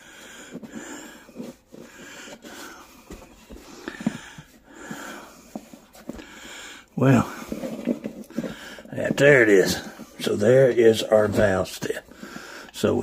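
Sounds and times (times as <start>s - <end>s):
man breathing: 0.0s - 10.2s, 12.0s - 12.9s.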